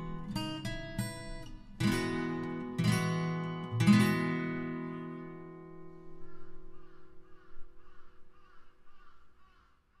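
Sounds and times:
crow cawing: 5.9 - 10.0.

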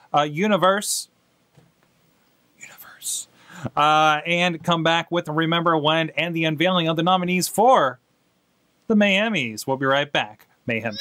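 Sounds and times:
man breathing in: 3.3 - 3.8.

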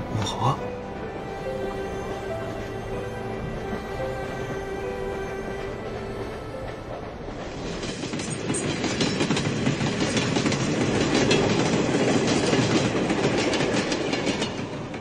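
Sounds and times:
train wheels clacking on rails: 5.0 - 15.0.

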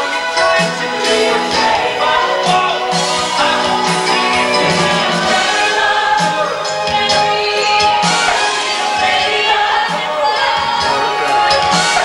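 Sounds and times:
band accompaniment: 0.0 - 12.0
chorus singing: 0.0 - 12.0.

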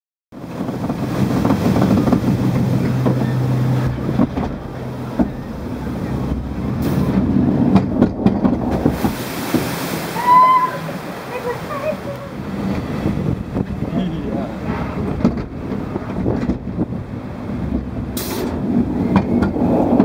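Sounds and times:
mechanical rumble: 0.4 - 9.6, 10.8 - 20.0
rushing water: 0.4 - 20.0.

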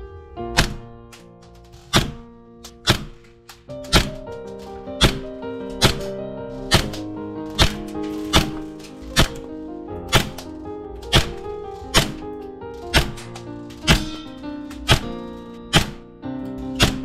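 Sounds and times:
background music: 0.0 - 17.0
airsoft pistol shots: 0.6 - 1.0, 1.8 - 2.2, 2.8 - 3.3, 3.9 - 4.2, 5.0 - 6.1, 6.7 - 7.0, 7.6 - 8.6, 12.9 - 16.1, 16.8 - 17.0.

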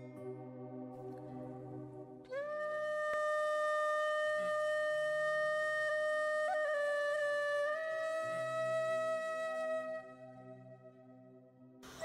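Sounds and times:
long flute note: 2.3 - 11.1.

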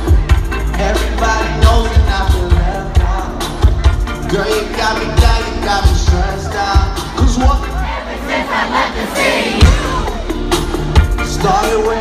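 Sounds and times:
crowd cheering and shouting: 0.0 - 12.0
loud music: 0.0 - 12.0
deep bass hit: 9.6 - 11.3.

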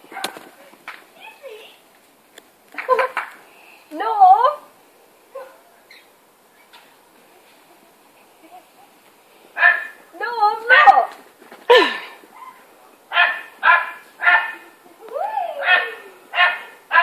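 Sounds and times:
dog barking: 5.4 - 5.7, 9.6 - 10.0, 12.4 - 14.6, 15.6 - 17.0.

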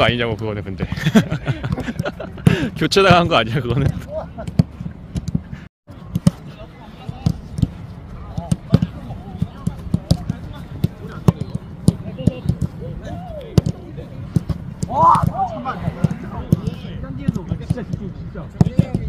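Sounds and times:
players' voices: 0.0 - 4.6, 6.0 - 19.0.

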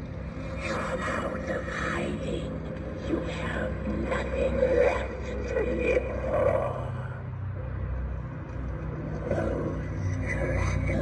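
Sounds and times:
growl-like swells: 0.4 - 7.6.

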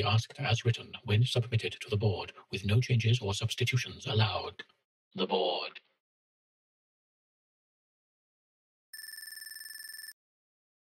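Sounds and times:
electronic trilling tone: 9.0 - 10.1.

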